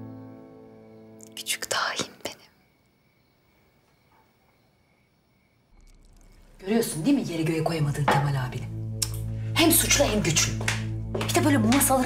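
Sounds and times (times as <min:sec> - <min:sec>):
background music: 0:06.3 - 0:12.0.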